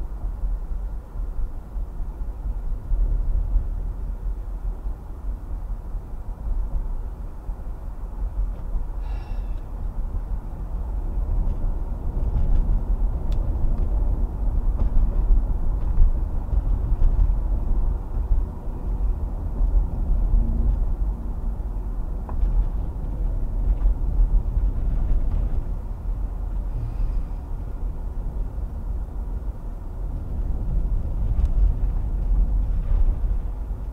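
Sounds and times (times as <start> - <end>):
car road and engine rumble: 0.0 - 33.9.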